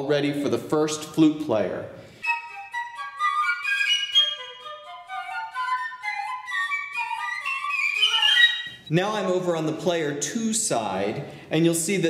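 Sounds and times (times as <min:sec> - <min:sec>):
flute melody: 0:02.2 - 0:08.9.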